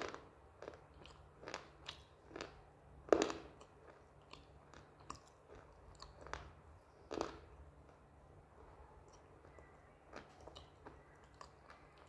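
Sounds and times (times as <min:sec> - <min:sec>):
crunchy chewing: 0:00.0 - 0:08.0, 0:09.0 - 0:12.0.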